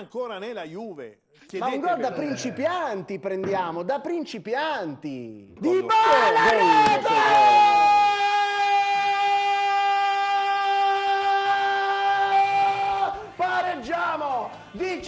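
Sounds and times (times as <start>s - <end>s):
men shouting in celebration: 5.7s - 15.0s.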